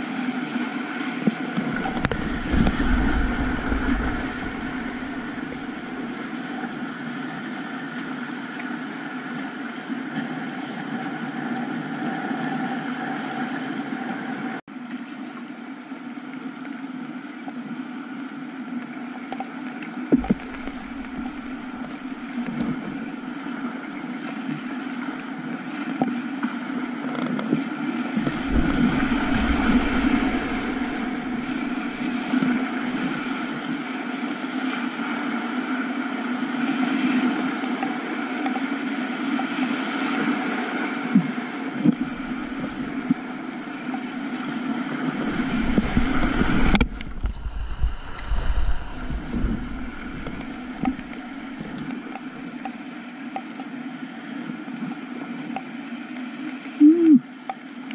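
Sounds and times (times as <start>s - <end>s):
water hitting camera: 1.5s - 6.4s, 20.2s - 23.1s, 28.1s - 33.4s, 41.8s - 43.2s, 45.2s - 52.4s
whitewater rapids roaring: 1.7s - 6.9s, 20.2s - 23.2s, 28.2s - 34.2s, 42.0s - 43.5s, 45.0s - 52.4s.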